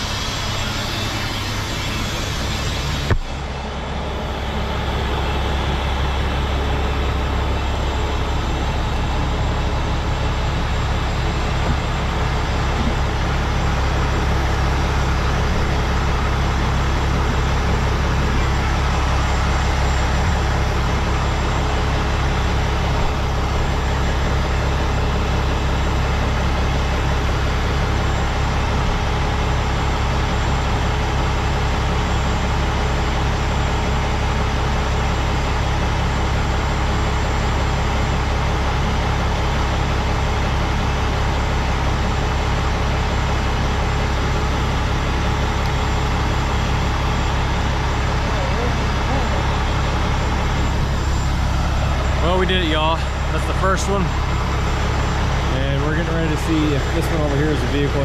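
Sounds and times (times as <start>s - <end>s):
diesel truck engine idling: 0.0s - 58.0s.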